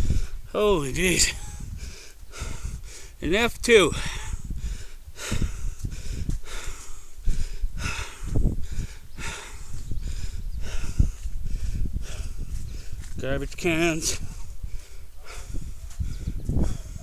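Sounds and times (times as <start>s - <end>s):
man breathing heavily: 0.0s - 3.2s, 3.9s - 13.2s, 13.8s - 17.0s.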